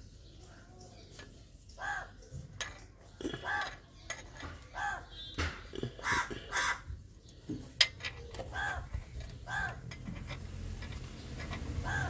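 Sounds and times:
crow cawing: 4.8s - 5.1s, 6.0s - 6.9s, 9.5s - 9.8s.

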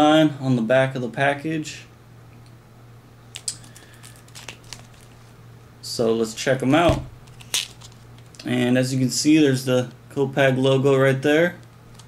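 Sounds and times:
steady low hum: 0.0s - 12.0s
card packaging crinkles and clicks: 3.3s - 5.3s, 7.2s - 8.4s.

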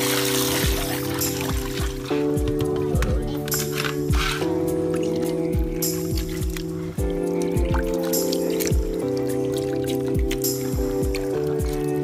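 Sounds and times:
electronic music with bass kicks: 0.0s - 12.0s.

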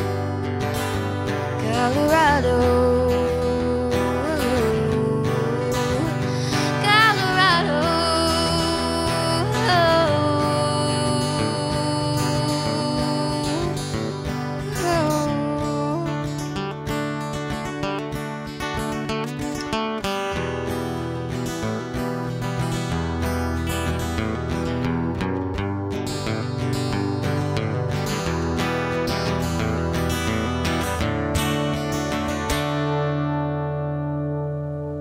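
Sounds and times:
acoustic guitar strumming: 0.0s - 35.0s.

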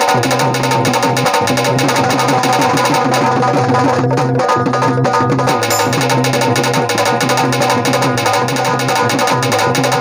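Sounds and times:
rapid hand drumming: 0.0s - 10.0s
held instrumental note: 5.6s - 6.6s.

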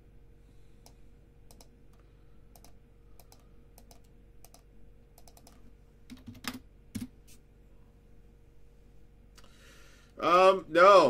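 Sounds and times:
faint electrical hum: 0.0s - 11.0s
computer keyboard typing: 1.5s - 4.6s, 5.2s - 7.1s.

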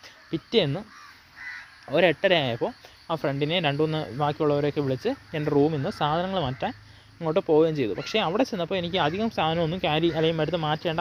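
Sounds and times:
bird calling: 0.0s - 11.0s.

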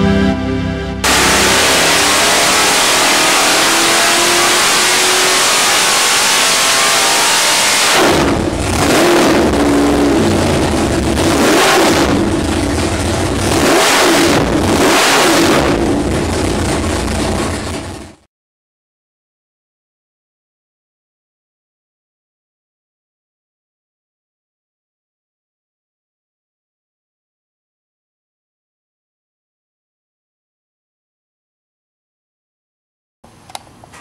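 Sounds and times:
loud engine revving on dyno: 1.0s - 18.2s.

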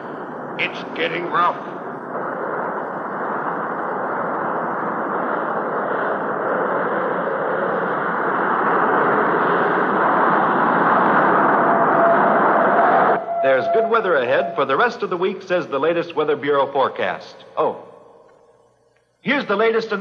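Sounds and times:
storm wind rushing: 0.0s - 16.5s.

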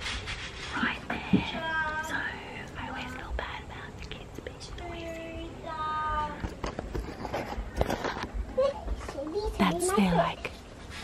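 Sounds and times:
woman whispering: 0.7s - 5.2s, 9.6s - 10.5s.

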